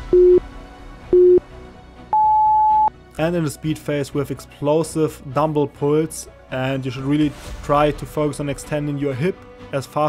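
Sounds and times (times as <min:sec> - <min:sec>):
interval timer beeps: 0:02.2 - 0:02.9.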